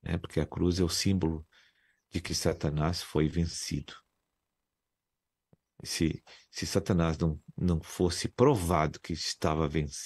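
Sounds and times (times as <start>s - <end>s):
person speaking: 2.1s - 4.1s.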